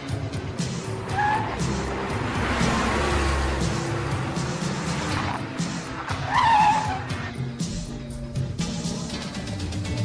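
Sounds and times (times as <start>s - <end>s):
background music: 0.0s - 10.0s
car tyres squealing: 0.8s - 3.6s, 4.7s - 7.4s.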